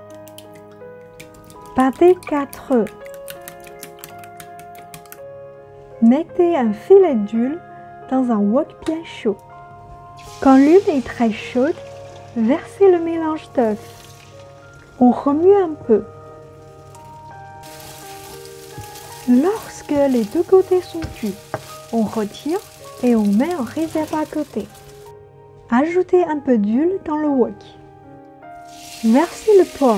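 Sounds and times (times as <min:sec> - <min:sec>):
soft background music: 0:00.0 - 0:29.9
eggs sizzling in hot oil: 0:10.2 - 0:15.3, 0:16.3 - 0:25.1, 0:28.6 - 0:29.9.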